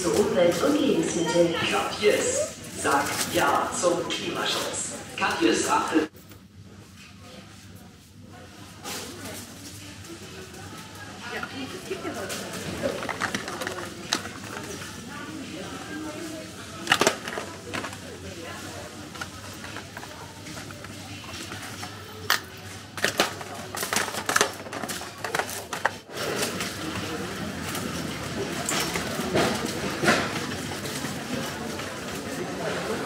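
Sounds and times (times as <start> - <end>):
indistinct background talk: 0.0 - 33.0.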